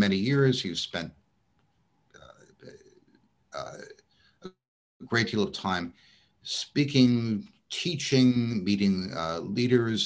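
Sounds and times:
man speaking: 0.0s - 1.2s, 2.2s - 3.0s, 3.6s - 10.0s.

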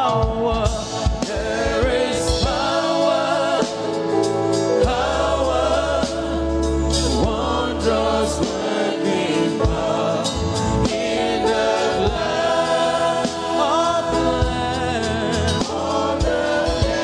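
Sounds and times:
instrumental backing: 0.0s - 17.0s
sustained bass line: 0.0s - 17.0s
gospel choir singing: 0.1s - 17.0s.

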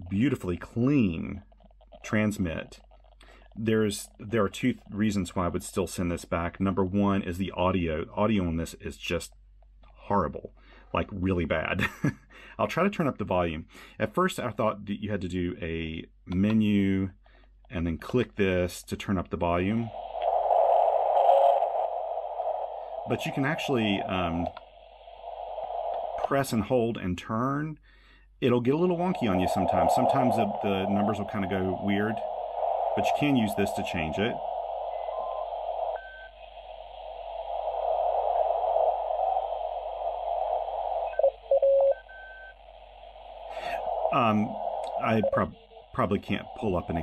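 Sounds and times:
radio receiver hiss: 18.0s - 27.8s, 28.4s - 47.0s
brief steady tones: 20.0s - 26.7s, 29.0s - 47.0s.

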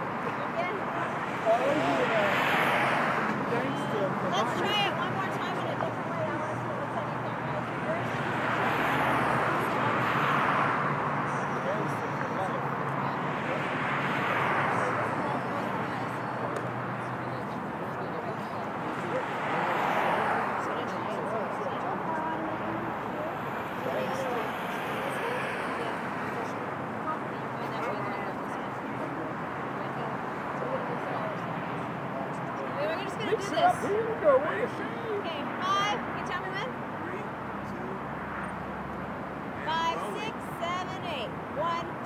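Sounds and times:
cars passing: 0.0s - 42.0s
people's voices in background: 0.0s - 42.0s.

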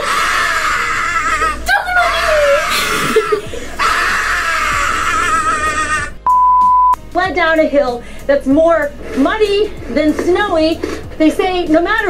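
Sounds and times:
music: 0.1s - 12.0s
censor bleep: 6.2s - 7.0s.

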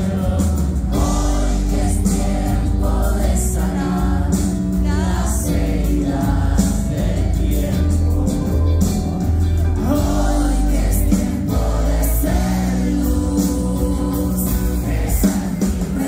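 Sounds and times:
bass guitar: 0.0s - 16.0s
drums: 0.0s - 16.0s
electric guitars: 0.0s - 16.0s
people singing: 0.0s - 16.0s.

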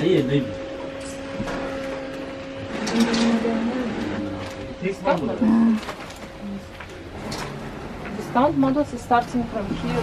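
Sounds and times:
steady hum: 0.0s - 10.0s
people talking: 8.1s - 10.0s.

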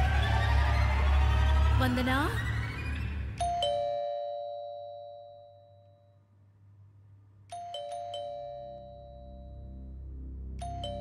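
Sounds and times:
two-tone doorbell chime: 3.4s - 6.2s, 7.5s - 9.8s, 10.6s - 11.0s.

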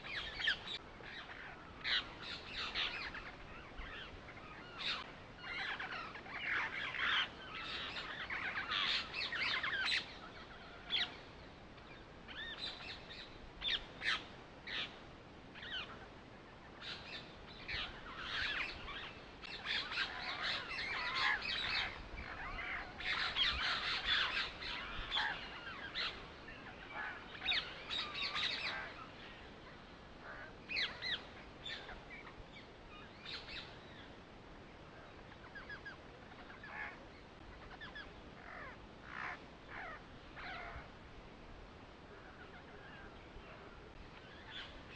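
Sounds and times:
birds chirping: 0.0s - 41.1s, 41.8s - 44.9s.

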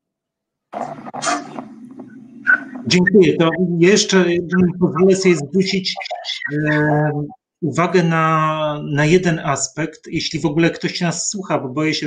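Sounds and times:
microphone hum: 0.8s - 7.4s.

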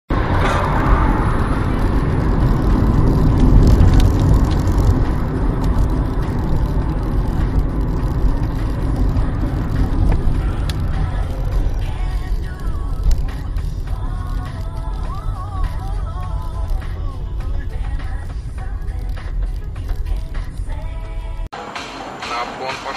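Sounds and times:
road and engine rumble in car: 0.1s - 21.6s.

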